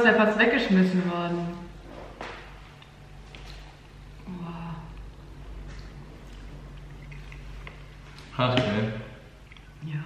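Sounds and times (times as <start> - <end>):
eating cake: 2.7 - 10.0.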